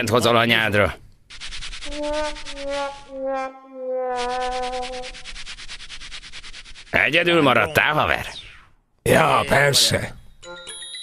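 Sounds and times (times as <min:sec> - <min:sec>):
rapid even rasping: 0:01.3 - 0:07.6
held brass note: 0:01.9 - 0:05.3.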